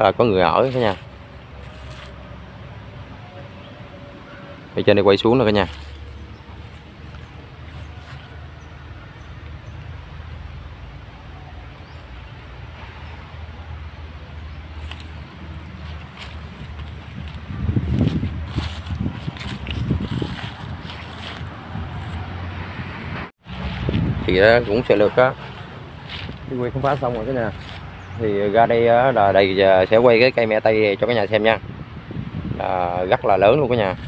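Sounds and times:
wind buffeting microphone: 14.8 - 34.0.

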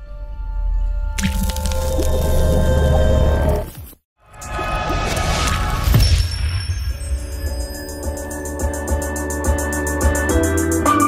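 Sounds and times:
wet splat: 1.2 - 2.0.

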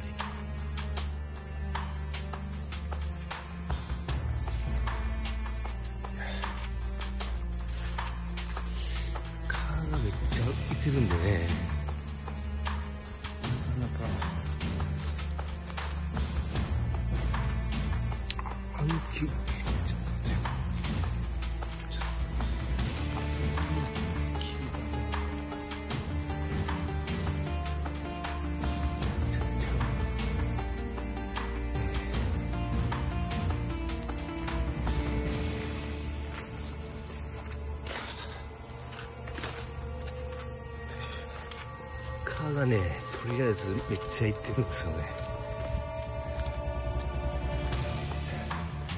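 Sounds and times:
night insects chorus: 0.0 - 48.9.

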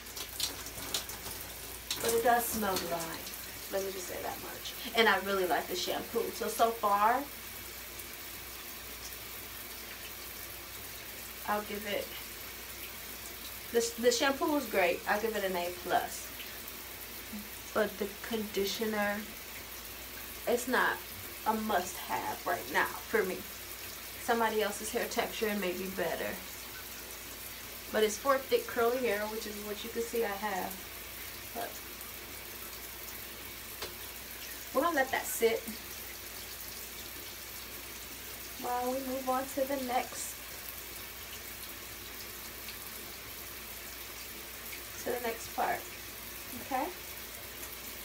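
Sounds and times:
shower water hissing: 0.0 - 48.0.

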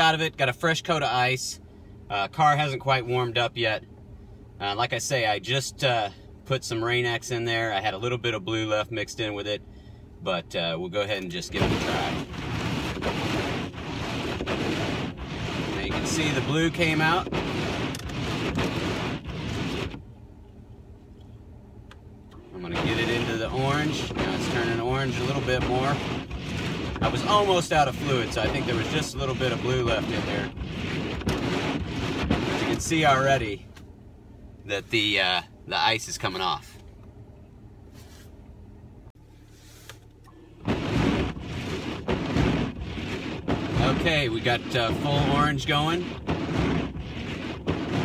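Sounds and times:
car engine idling: 9.3 - 37.8, 38.4 - 48.0
wipers scraping icy windshield: 10.6 - 20.0, 22.4 - 33.6, 40.6 - 48.0.

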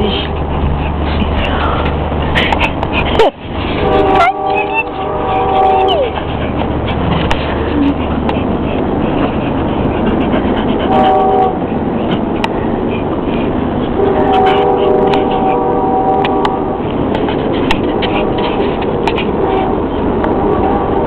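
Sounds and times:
steady low hum: 0.0 - 21.0
multi-tone horn: 3.7 - 6.4, 10.7 - 12.0, 13.9 - 17.1, 17.9 - 21.0.

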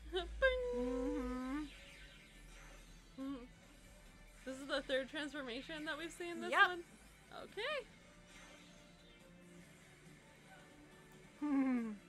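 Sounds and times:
woman humming: 0.0 - 1.7, 3.2 - 3.5, 11.4 - 12.0.

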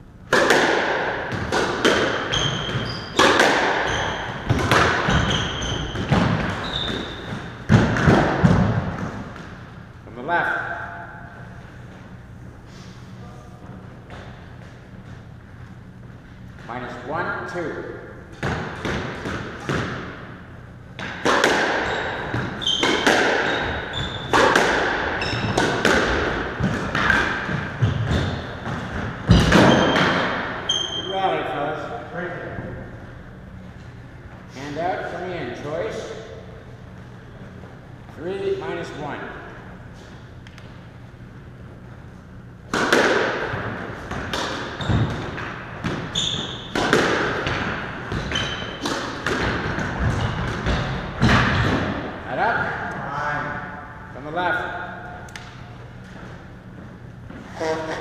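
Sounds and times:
squash ball hit by rackets: 0.3 - 9.6, 18.3 - 20.3, 21.0 - 31.0, 42.6 - 52.2.

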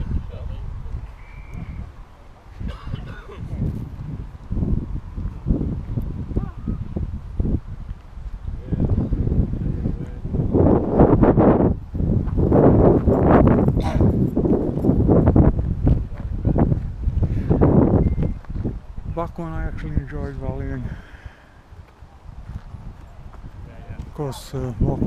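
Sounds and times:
wind buffeting microphone: 0.0 - 25.0
indistinct voices: 13.7 - 14.3.

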